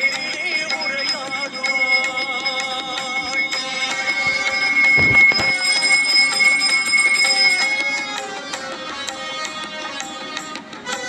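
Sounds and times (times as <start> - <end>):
hand bell ringing rapidly: 0.0 - 8.0.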